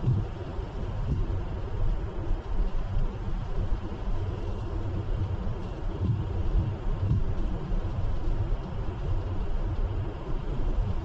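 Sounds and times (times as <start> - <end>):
road noise hiss: 0.0 - 11.0.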